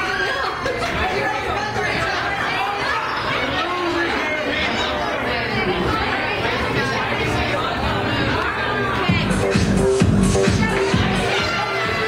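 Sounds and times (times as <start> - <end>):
babble of overlapping voices: 0.0 - 12.0.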